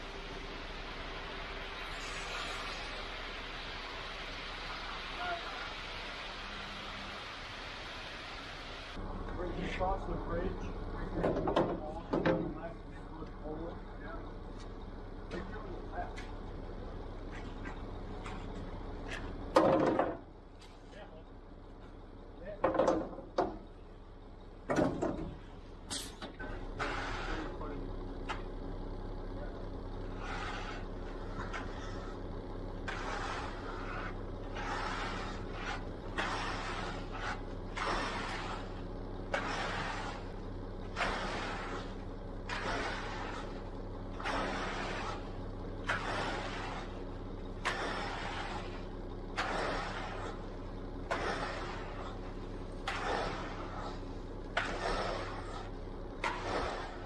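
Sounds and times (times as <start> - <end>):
engine hum: 0.0 - 57.0
tools scraping wet concrete: 25.9 - 28.4, 30.0 - 57.0.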